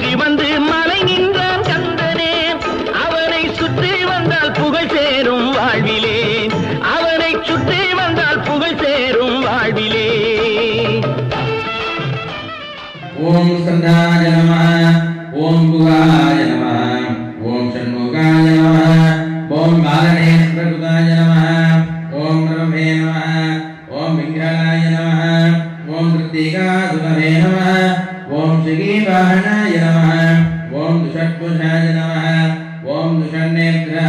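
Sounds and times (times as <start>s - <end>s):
man chanting mantras: 13.2s - 34.0s.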